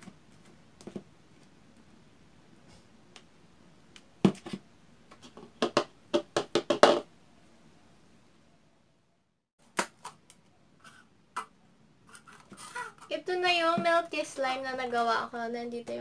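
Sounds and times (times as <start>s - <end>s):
plastic cup knocking on table: 5.6s - 7.1s.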